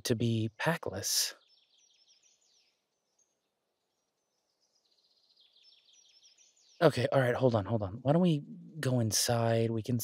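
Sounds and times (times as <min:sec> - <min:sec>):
man speaking: 0:00.0 - 0:01.3, 0:06.8 - 0:10.0
faint high bird chirps: 0:00.0 - 0:10.0.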